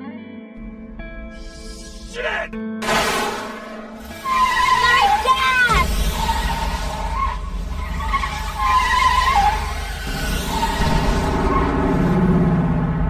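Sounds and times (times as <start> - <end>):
car tyres squealing: 2.9 - 12.6
deep car engine rumble: 4.0 - 13.0.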